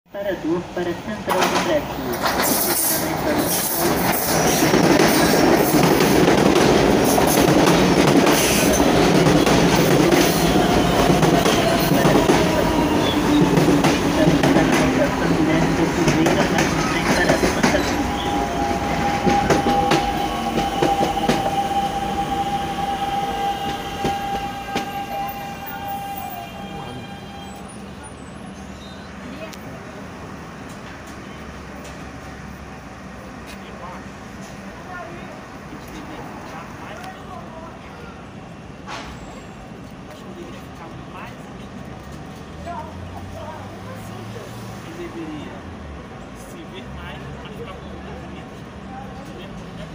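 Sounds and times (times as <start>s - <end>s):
train rumbling and wheel clatter: 0.1s - 49.9s
train brakes squealing: 10.2s - 13.7s, 16.7s - 29.2s, 38.9s - 39.9s.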